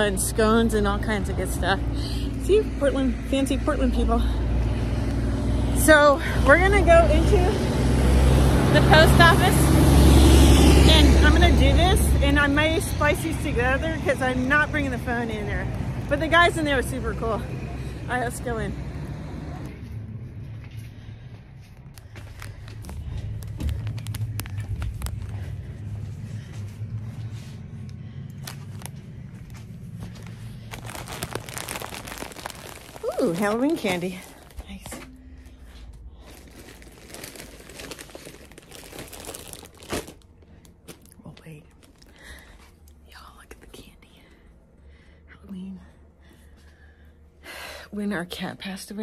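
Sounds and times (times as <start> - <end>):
steady low hum: 19.6 - 49.0
woman whispering: 43.0 - 44.6, 45.3 - 46.1.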